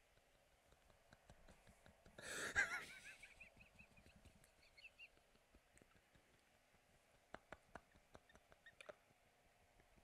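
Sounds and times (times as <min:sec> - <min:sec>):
man wheezing laughter: 0:00.8 - 0:04.2
high-pitched laughing squeaks: 0:08.0 - 0:09.0.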